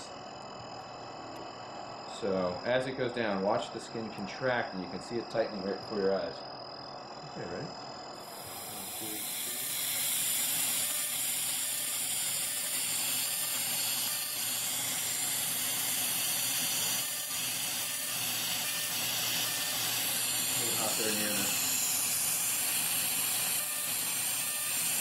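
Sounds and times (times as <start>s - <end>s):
laser hissing: 1.9s - 25.0s.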